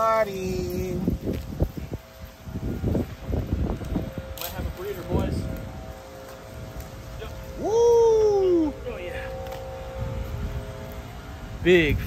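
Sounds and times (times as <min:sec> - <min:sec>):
leaves and branches rustling: 0:00.0 - 0:12.0.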